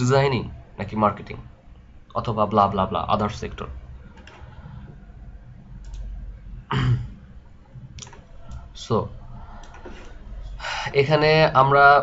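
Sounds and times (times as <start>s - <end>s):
computer mouse clicks: 4.1s - 4.7s, 5.8s - 6.1s, 7.9s - 8.7s, 9.5s - 10.2s.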